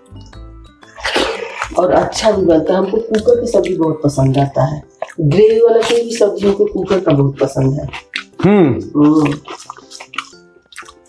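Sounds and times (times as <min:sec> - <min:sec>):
faint background music: 0:00.0 - 0:11.0
person speaking: 0:08.4 - 0:09.4.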